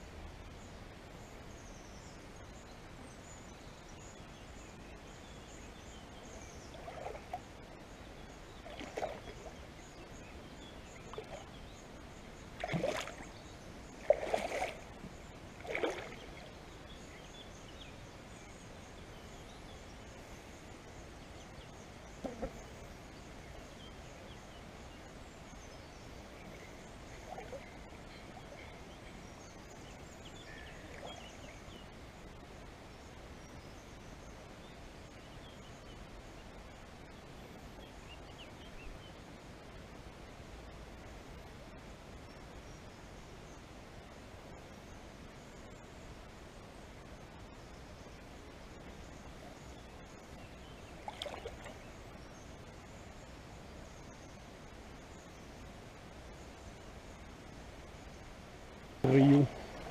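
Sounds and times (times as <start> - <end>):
faint bird chirps: 0.6 - 39.2
water splashes: 6.6 - 7.7, 8.5 - 9.8, 10.9 - 11.6, 12.5 - 16.6, 26.5 - 28.6, 50.9 - 52.0, 59.0 - 59.9.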